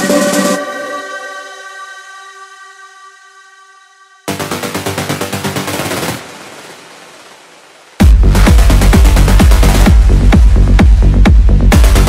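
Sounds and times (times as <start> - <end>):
rapid techno drum roll: 4.4 - 6.3, 8.0 - 12.0.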